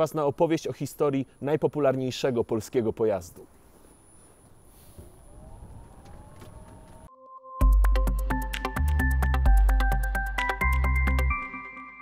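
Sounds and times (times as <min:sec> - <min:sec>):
electric motor whine: 0:05.3 - 0:07.1.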